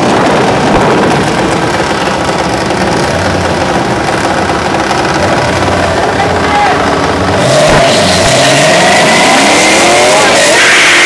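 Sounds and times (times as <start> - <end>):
car engines idling: 0.0 - 11.0.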